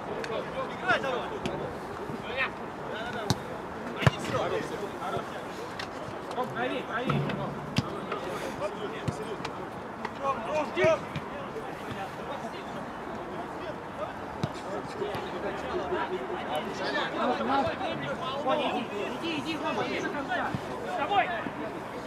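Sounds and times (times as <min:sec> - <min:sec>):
football kick thuds: 0:07.1 - 0:08.3.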